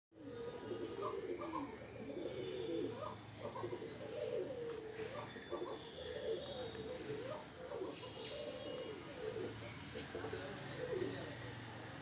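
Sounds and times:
pigeon cooing: 0.2 - 11.7.

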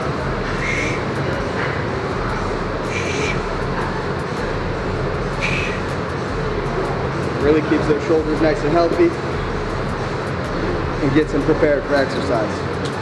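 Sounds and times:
low hum: 0.0 - 7.6, 8.2 - 11.9
ventilation rushing: 0.0 - 13.0
short hisses: 0.5 - 1.1, 2.9 - 3.4.

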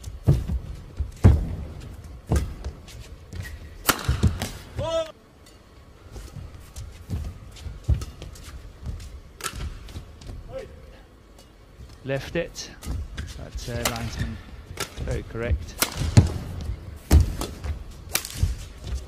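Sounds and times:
footsteps on court mat: 0.0 - 5.1, 5.8 - 19.0
rackets striking shuttlecock: 1.2 - 4.8, 7.9 - 10.0, 12.7 - 19.0.

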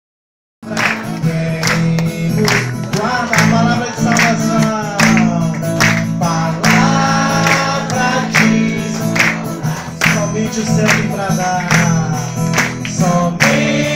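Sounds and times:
song with singing: 0.6 - 13.9.

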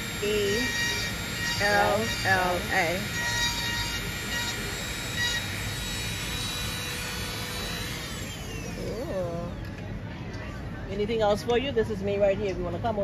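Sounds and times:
mechanical whirring hum: 0.0 - 13.0.

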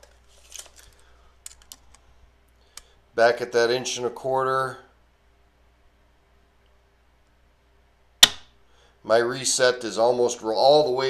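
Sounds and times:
sharp metallic trigger click: 8.2 - 8.5.

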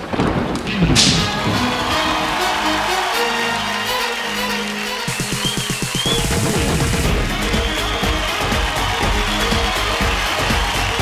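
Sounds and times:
music: 1.0 - 11.0.

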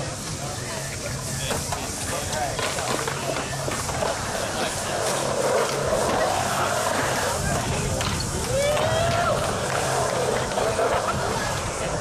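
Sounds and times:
skateboard wheels rolling on concrete: 0.0 - 12.0
spectators chatting: 0.0 - 12.0.

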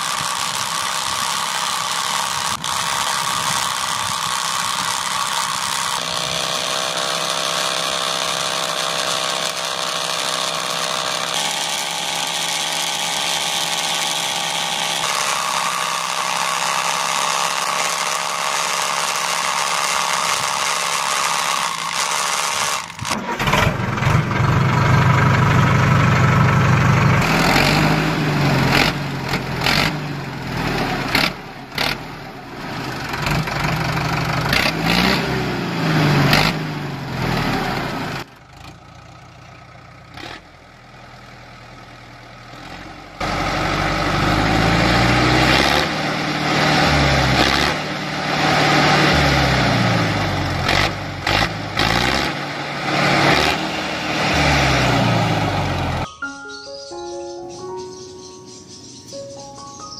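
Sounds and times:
small motor running: 0.0 - 23.5
tractor engine idling and revving: 0.0 - 56.1.

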